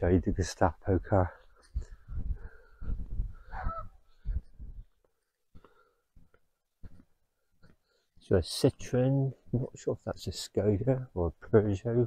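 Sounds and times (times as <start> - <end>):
low thuds: 0.3 - 5.0.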